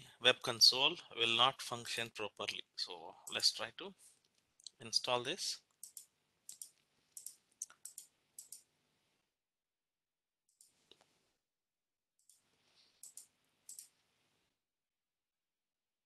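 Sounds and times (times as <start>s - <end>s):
computer mouse clicks: 5.7s - 8.7s, 13.0s - 13.9s.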